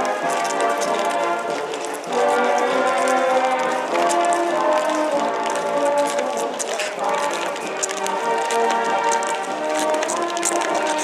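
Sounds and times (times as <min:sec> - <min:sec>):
band playing march music: 0:00.0 - 0:11.0.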